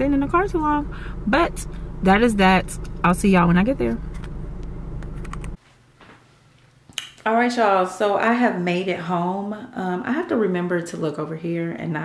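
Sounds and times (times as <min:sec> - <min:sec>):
car interior rumble: 0:00.0 - 0:05.6.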